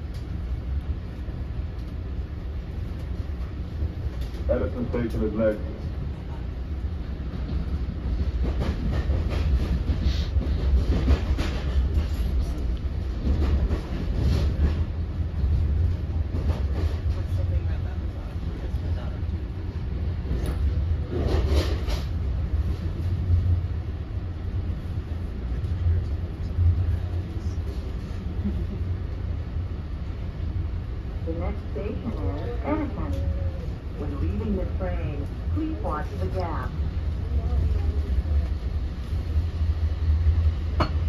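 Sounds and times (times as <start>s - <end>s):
train coach rattling: 0.0s - 41.0s
train wheels rumbling on rail: 0.0s - 41.0s.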